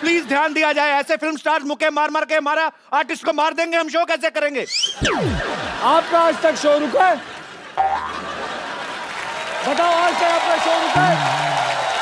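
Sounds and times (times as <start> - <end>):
comedy sound effect tone: 4.8 - 5.8, 7.8 - 8.3.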